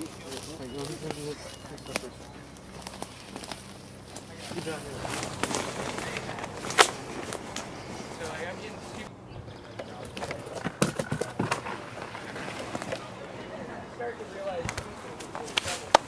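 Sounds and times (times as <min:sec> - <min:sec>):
brush rustling: 0:00.0 - 0:09.1, 0:14.0 - 0:16.0
faint indistinct voices: 0:00.0 - 0:16.0.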